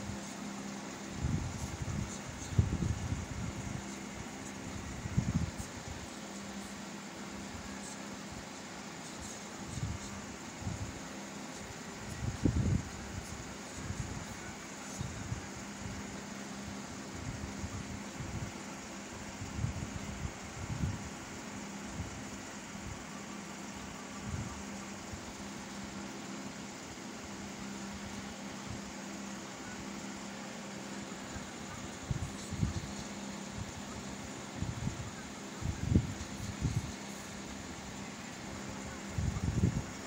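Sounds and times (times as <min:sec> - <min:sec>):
steady hum with hiss: 0:00.0 - 0:40.0.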